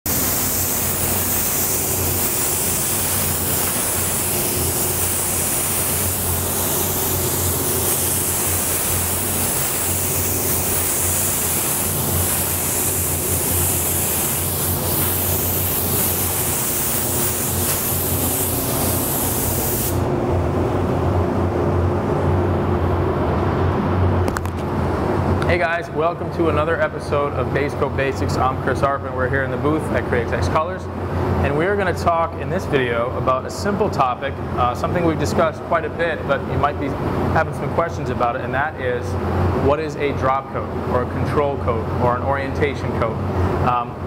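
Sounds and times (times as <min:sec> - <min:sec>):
ventilation hum: 0:00.0 - 0:44.0
spray gun hissing: 0:00.1 - 0:20.1.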